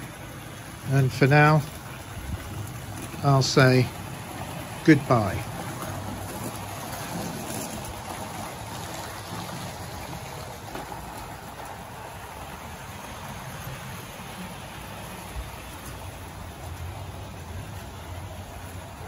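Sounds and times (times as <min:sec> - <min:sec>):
model train running on track: 0:00.0 - 0:19.0.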